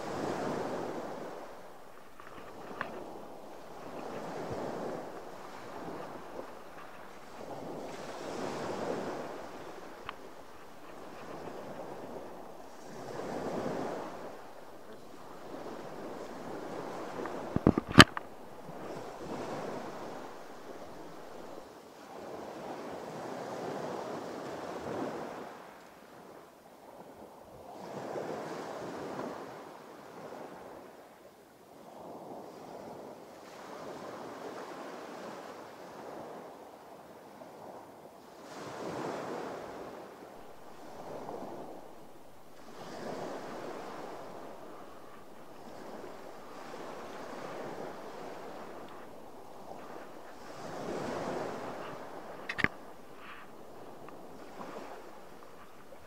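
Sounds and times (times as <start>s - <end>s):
waves washing against boat: 0.0s - 25.8s, 38.4s - 56.0s
wind on microphone: 0.0s - 31.0s, 31.7s - 56.0s.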